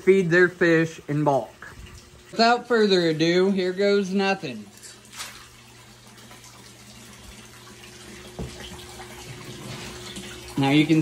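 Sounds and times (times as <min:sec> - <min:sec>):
water running into tank: 0:00.0 - 0:11.0
pellets pattering on water: 0:04.7 - 0:05.8
knock: 0:08.4 - 0:08.6.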